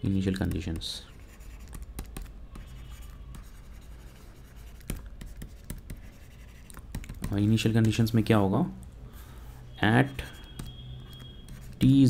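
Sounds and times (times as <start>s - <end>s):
stylus tapping on tablet screen: 1.6s - 3.6s, 4.7s - 8.2s.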